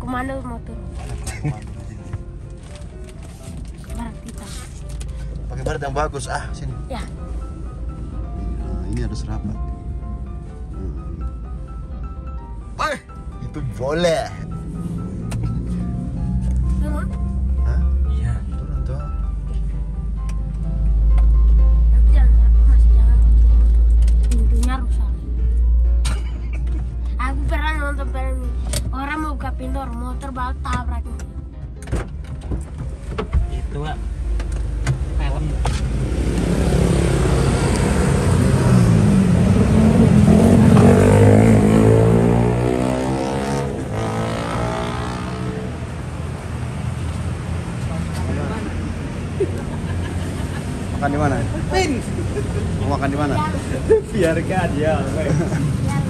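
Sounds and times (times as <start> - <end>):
music: 0.0 - 39.9, 48.3 - 56.0
car engine and road rumble: 0.0 - 56.0
motor vehicle passing: 12.8 - 26.0, 32.9 - 56.0.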